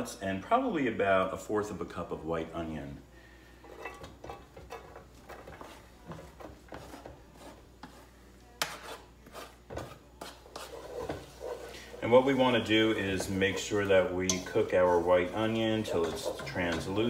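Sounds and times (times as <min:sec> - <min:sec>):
wooden spoon scraping board: 0:03.6 - 0:17.0.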